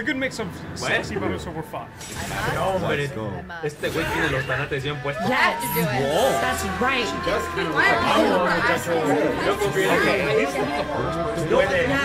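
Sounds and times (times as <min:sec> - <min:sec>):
overlapping voices chattering: 0:05.4 - 0:12.0.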